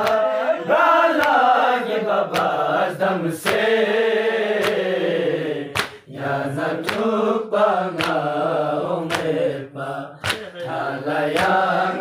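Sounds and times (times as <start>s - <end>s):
man chanting a lament: 0.0s - 1.2s, 10.0s - 11.2s.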